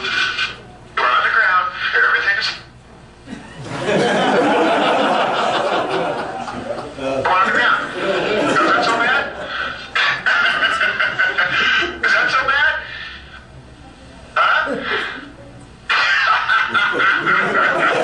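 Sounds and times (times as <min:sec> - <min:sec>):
voices over speakers: 0:00.0 - 0:02.8, 0:05.8 - 0:18.0.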